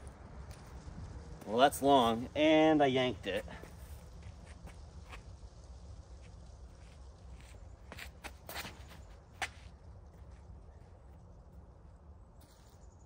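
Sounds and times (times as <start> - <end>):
wind rumble on microphone: 0.0 - 13.0
footsteps on concrete: 6.8 - 9.7.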